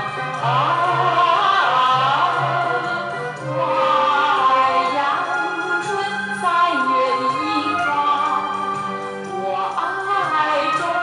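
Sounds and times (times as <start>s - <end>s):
song with sliding melody: 0.0s - 11.0s.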